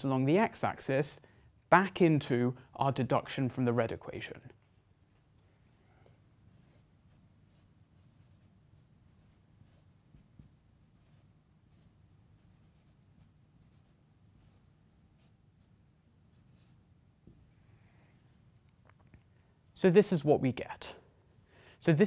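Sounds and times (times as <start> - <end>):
low room hum: 0.0 - 22.0
marker on whiteboard: 6.5 - 16.8.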